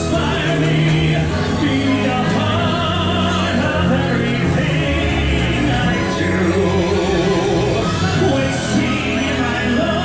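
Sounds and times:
music accompaniment: 0.0 - 10.0.

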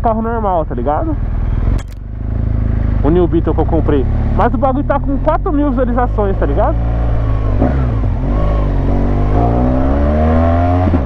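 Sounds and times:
motorcycle engine accelerating: 0.0 - 11.0.

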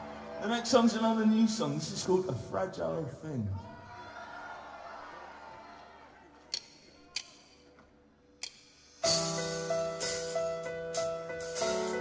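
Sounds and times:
live audience noise: 0.0 - 7.8
band playing: 8.8 - 12.0.

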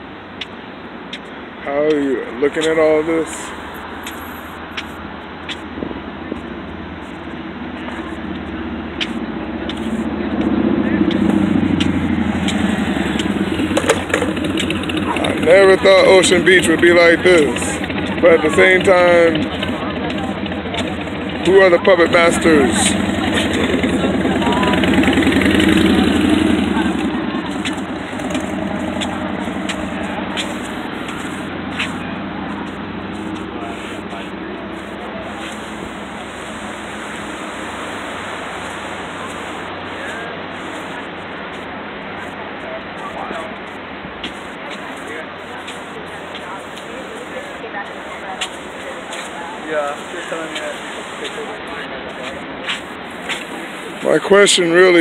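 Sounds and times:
outdoor background noise: 0.0 - 55.0
vehicle engine approaching: 0.0 - 55.0.

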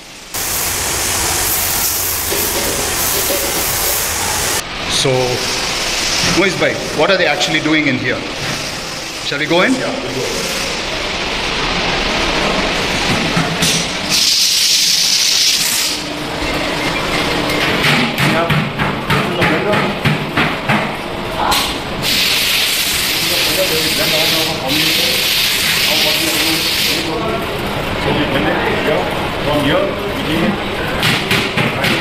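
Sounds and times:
loud hissing bursts: 0.0 - 16.1, 22.0 - 27.2
voices in a factory room: 0.0 - 32.0.

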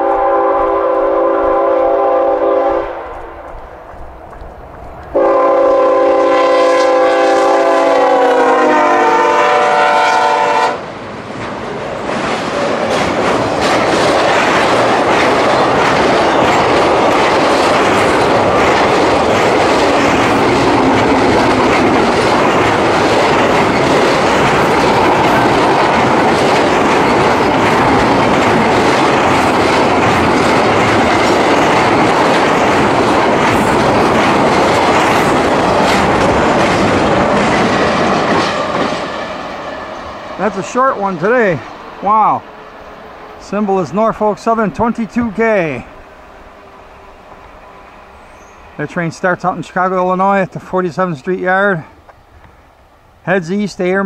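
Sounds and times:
locomotive horn chord: 0.0 - 3.1, 5.2 - 10.8
train wheels clacking over rail joints: 12.0 - 39.4.

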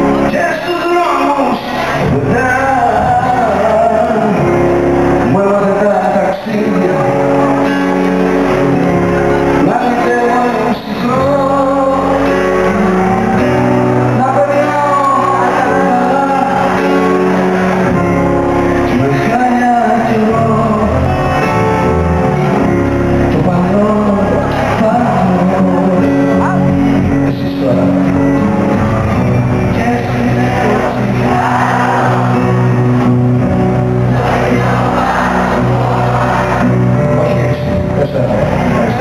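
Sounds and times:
band playing pop music: 0.0 - 39.0
man singing long notes: 0.0 - 39.0.

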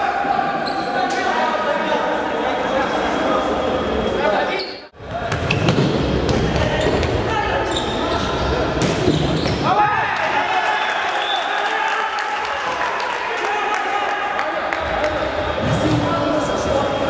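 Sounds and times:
players shouting: 9.4 - 17.0.

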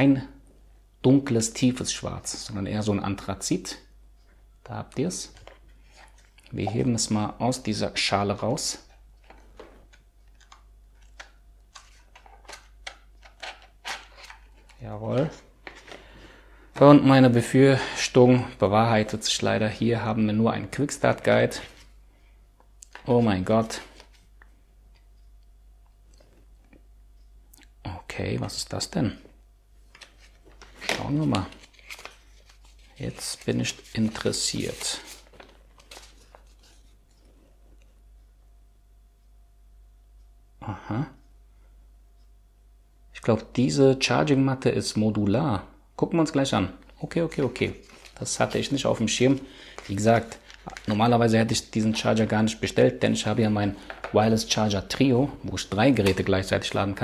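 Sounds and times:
plastic packaging clicks and crackles: 29.9 - 36.9, 47.8 - 51.0, 53.8 - 54.2
paper leaflet rustling: 29.9 - 37.2, 47.4 - 52.6.

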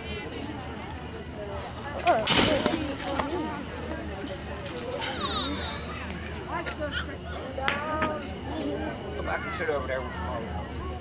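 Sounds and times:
ball rattling chain-link fence: 2.0 - 6.5.

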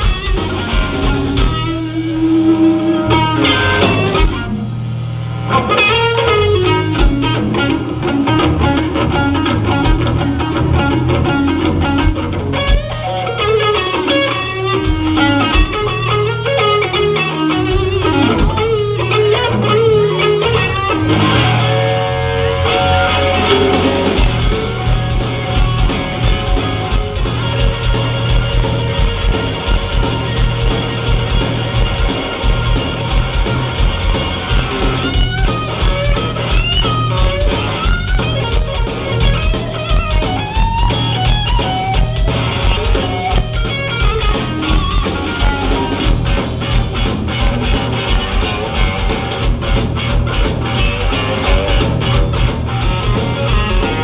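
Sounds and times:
bass guitar: 0.0 - 54.0
electric guitar lead: 0.0 - 54.0
steady drum beat: 0.0 - 54.0.

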